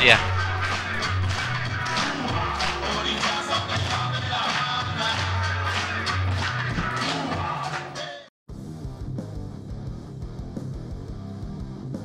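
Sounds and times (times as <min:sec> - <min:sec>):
music with steady beat and bass: 0:00.0 - 0:12.0.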